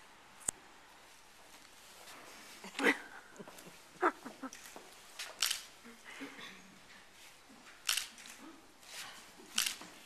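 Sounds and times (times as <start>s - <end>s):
faint room murmur: 0.0s - 10.0s
camera shutter click: 5.4s - 5.7s, 7.9s - 8.1s, 9.6s - 9.8s.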